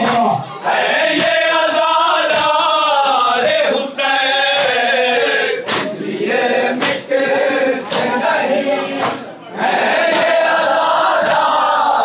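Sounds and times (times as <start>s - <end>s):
chest-beating slaps: 0.0s - 1.5s, 2.3s - 2.6s, 5.6s - 6.1s, 6.8s - 7.1s, 7.8s - 8.2s, 9.0s - 9.3s, 10.1s - 10.4s, 11.2s - 11.6s
men chanting in chorus: 0.0s - 12.0s.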